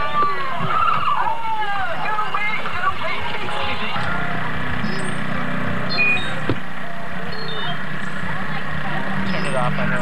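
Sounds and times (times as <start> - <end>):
many voices talking and calling: 0.0 - 10.0.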